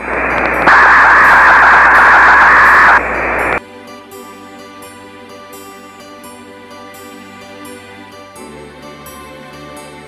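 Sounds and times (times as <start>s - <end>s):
loud hissing static: 0.0s - 3.6s.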